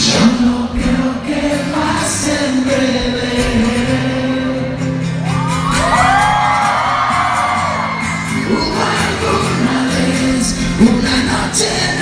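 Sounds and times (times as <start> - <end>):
live band music with singing: 0.0 - 12.0
audience whooping and cheering: 5.2 - 9.5.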